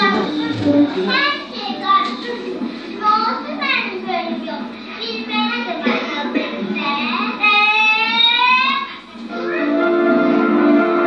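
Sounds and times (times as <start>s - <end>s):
child's high-pitched cry: 7.8s - 8.9s.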